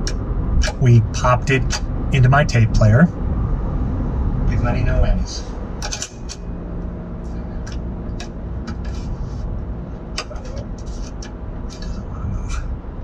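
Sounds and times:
steady hum: 0.0 - 13.0.

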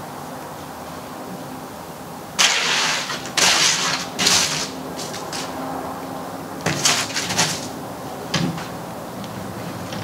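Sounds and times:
wet concrete sliding and scraping: 2.4 - 5.6, 6.7 - 7.7.

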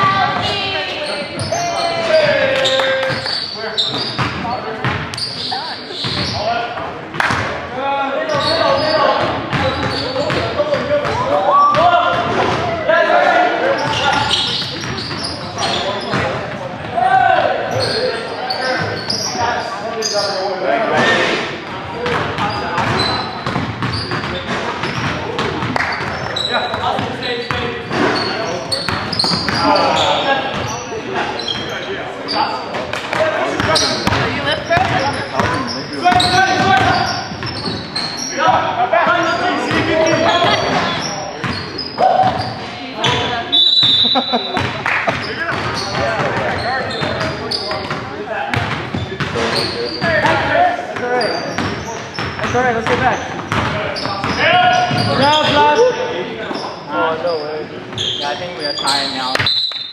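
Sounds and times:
players shouting: 0.0 - 3.5.

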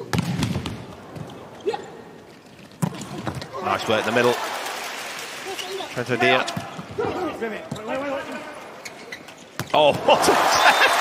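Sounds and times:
arena crowd noise: 3.0 - 11.0.

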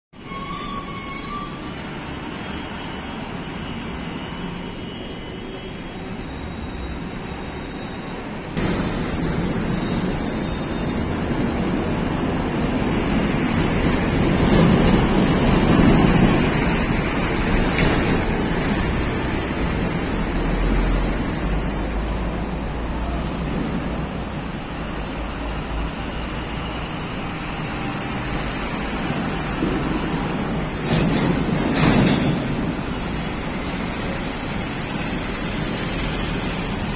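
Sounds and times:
highway traffic hiss: 0.8 - 36.9.

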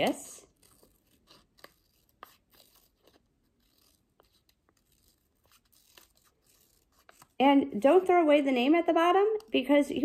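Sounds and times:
scissors snipping paper: 0.0 - 8.1.

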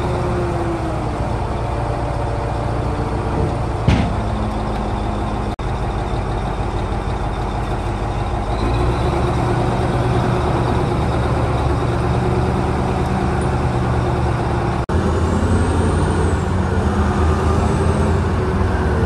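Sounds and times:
diesel engine under load: 0.0 - 19.0.

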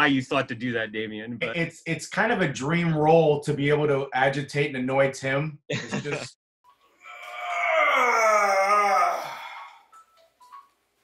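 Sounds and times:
man moaning: 7.1 - 9.9.

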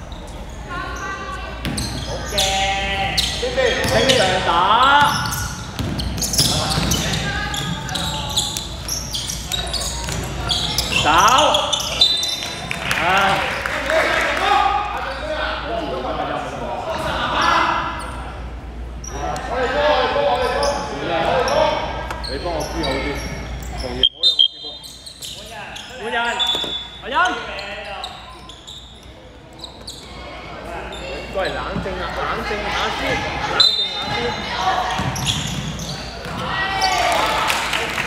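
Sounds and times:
players calling out: 0.2 - 15.8.

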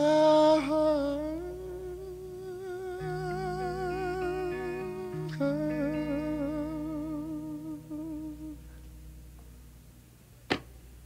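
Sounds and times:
sustained chords: 0.0 - 11.0.

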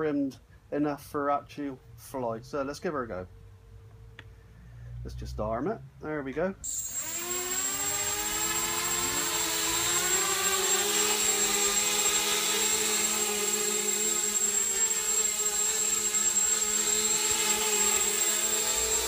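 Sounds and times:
quadcopter motors whining: 6.6 - 19.0
steady high whistle: 6.6 - 19.0.

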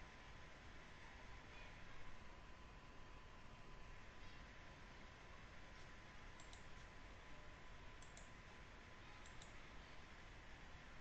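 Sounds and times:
room hiss: 0.0 - 11.0
computer mouse clicks: 6.3 - 6.9, 8.0 - 8.4, 9.2 - 9.6.

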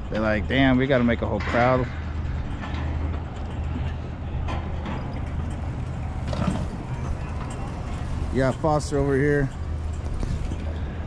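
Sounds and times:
street traffic hum: 0.0 - 11.0.

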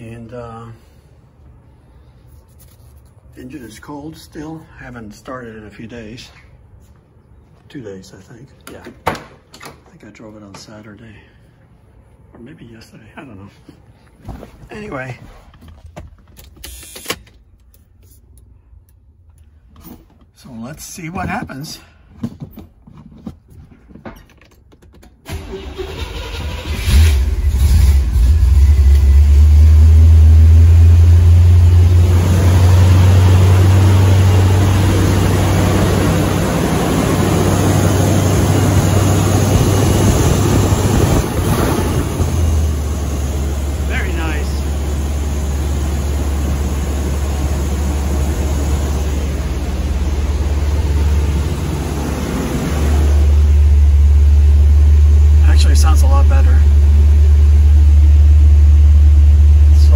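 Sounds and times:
car engine idling: 25.4 - 59.9.

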